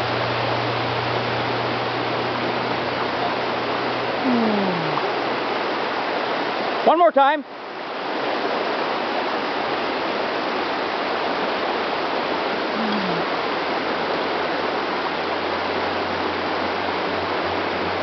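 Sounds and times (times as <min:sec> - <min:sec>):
stream rushing over stones: 0:00.0 - 0:18.0.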